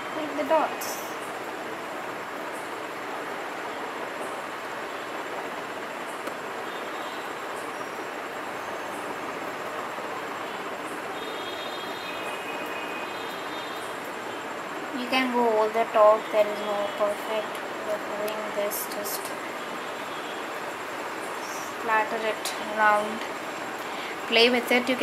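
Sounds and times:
steady background hiss: 0:00.0 - 0:25.0.

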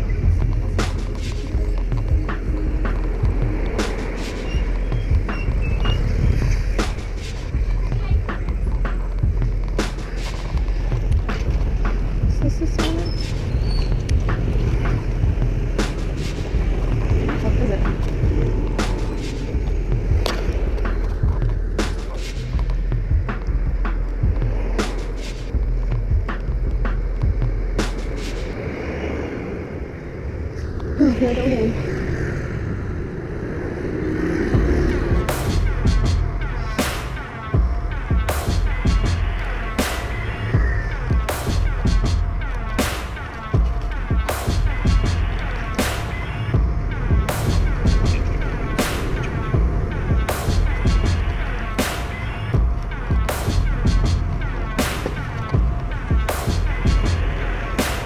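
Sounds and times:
voices: 0:00.0 - 0:25.6, 0:26.2 - 0:58.0
music: 0:00.0 - 0:29.3, 0:34.0 - 0:58.0
wind and road rumble: 0:00.0 - 0:58.0.

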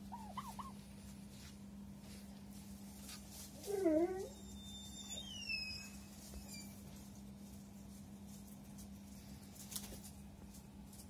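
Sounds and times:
turkey call: 0:00.0 - 0:00.8
steady low hum: 0:00.0 - 0:11.0.

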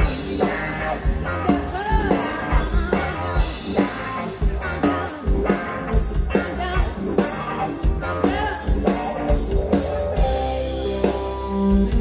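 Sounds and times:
drum kit beat: 0:00.0 - 0:12.0
electric guitar: 0:00.0 - 0:12.0
woman singing: 0:01.3 - 0:03.6, 0:04.6 - 0:07.0, 0:08.0 - 0:09.0.

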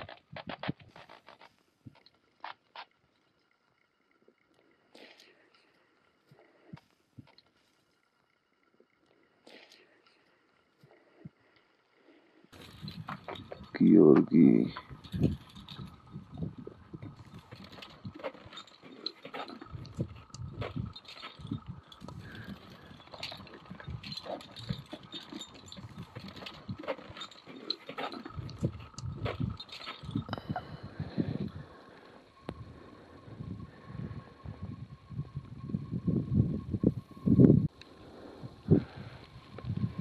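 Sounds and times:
climbing gear knocks and scrapes: 0:12.5 - 0:14.0, 0:14.8 - 0:30.4
wind buffeting microphone: 0:14.8 - 0:18.2, 0:32.4 - 0:37.7, 0:38.4 - 0:40.0.

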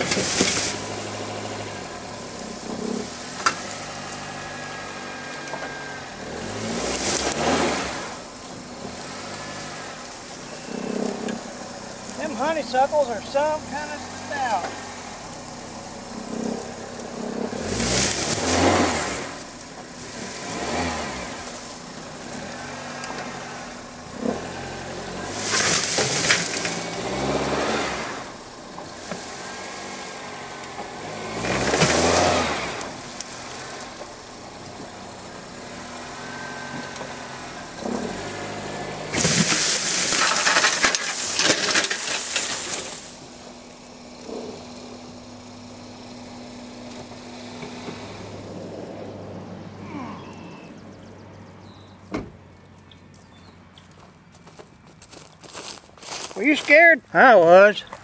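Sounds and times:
vines and brush tearing: 0:00.0 - 0:01.2, 0:06.4 - 0:08.2, 0:13.8 - 0:23.5, 0:24.2 - 0:28.4, 0:31.1 - 0:34.0, 0:38.0 - 0:43.2, 0:55.0 - 0:56.7
car engine revving under load: 0:00.0 - 0:53.9.

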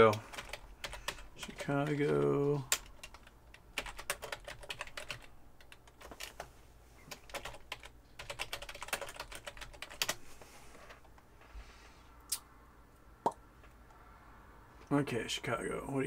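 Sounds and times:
typing on computer keyboard: 0:00.0 - 0:06.4, 0:07.2 - 0:10.2.

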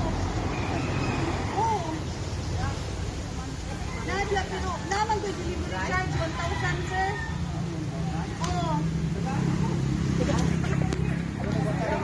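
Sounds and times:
people talking: 0:01.4 - 0:12.0.

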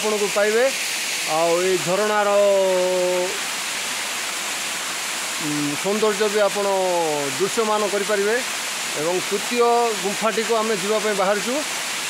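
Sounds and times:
waterfall splashing: 0:00.0 - 0:12.0.

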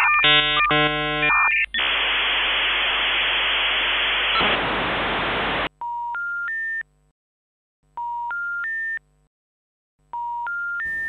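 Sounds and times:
electronic static hiss: 0:00.3 - 0:05.7.

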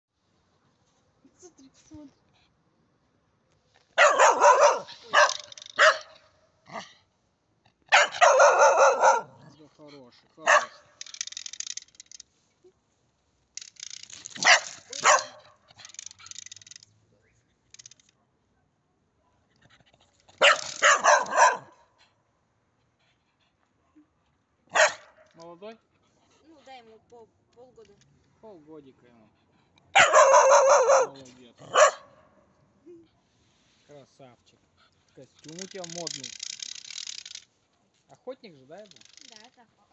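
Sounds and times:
dog barking: 0:04.0 - 0:06.9, 0:07.9 - 0:09.6, 0:10.4 - 0:11.0, 0:14.4 - 0:15.6, 0:20.4 - 0:21.9, 0:24.7 - 0:25.3, 0:29.9 - 0:32.4.

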